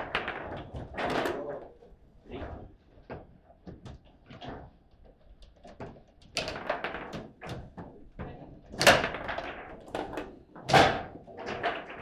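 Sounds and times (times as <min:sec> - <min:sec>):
table football plastic knocks: 0:05.6 - 0:12.0.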